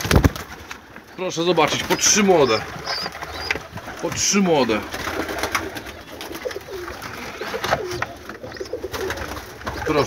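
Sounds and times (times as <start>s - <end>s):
pigeons cooing: 1.0s - 10.0s.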